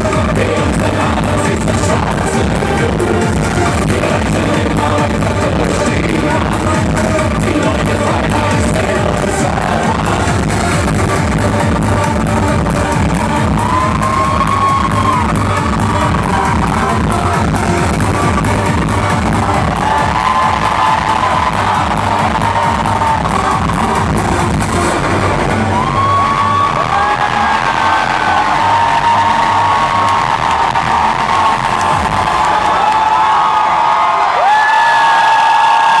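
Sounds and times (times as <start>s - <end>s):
electronic darkwave music with beat: 0.0s - 33.4s
audience cheering: 13.4s - 17.8s, 18.7s - 36.0s.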